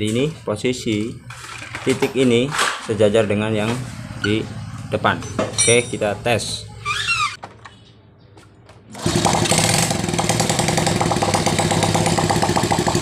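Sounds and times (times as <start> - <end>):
small engine idling: 8.9 - 13.0.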